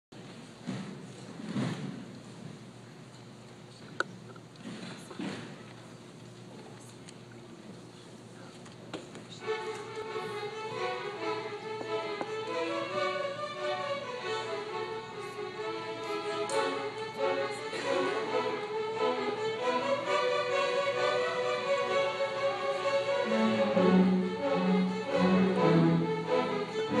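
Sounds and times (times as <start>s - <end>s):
string orchestra playing: 9.4s - 27.0s.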